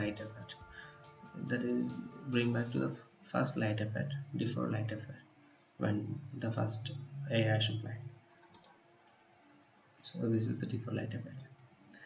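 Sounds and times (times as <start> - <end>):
computer mouse click: 8.4 - 8.8.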